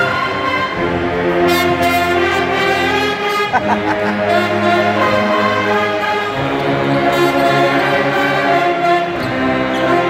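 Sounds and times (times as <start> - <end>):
pep band brass and drums: 0.4 - 9.2.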